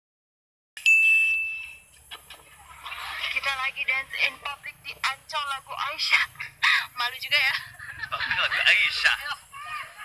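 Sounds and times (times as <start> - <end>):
bell-like ding: 0.8 - 1.8.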